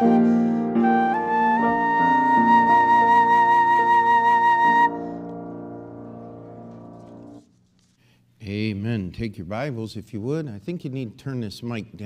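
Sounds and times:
flute note with vibrato: 0:00.0 - 0:05.5
sustained accompaniment: 0:00.0 - 0:07.5.

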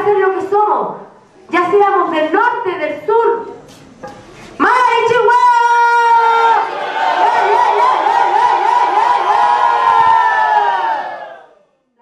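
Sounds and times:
crowd shouting together: 0:05.6 - 0:11.7.

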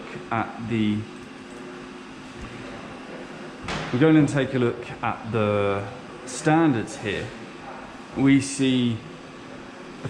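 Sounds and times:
man speaking: 0:00.0 - 0:01.1, 0:03.9 - 0:07.4, 0:08.1 - 0:09.1
room hum and hiss: 0:00.0 - 0:10.0.

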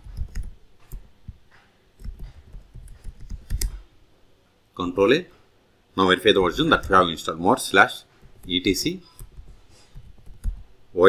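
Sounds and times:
keyboard keystrokes: 0:00.0 - 0:01.1, 0:02.0 - 0:03.8, 0:08.3 - 0:10.7.

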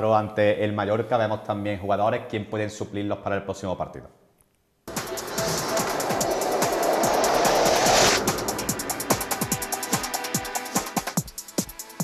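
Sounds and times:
rush of noise: 0:04.9 - 0:10.3.

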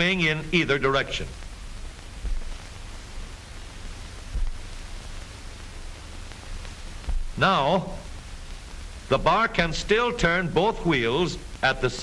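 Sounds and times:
film soundtrack hiss and static: 0:00.0 - 0:12.0
faint low thumps: 0:01.4 - 0:09.8.

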